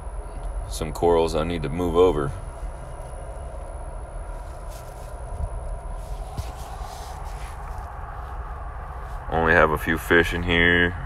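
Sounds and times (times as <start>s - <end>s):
aquarium pumps humming: 0.0s - 11.0s
faint high whine: 0.0s - 11.0s.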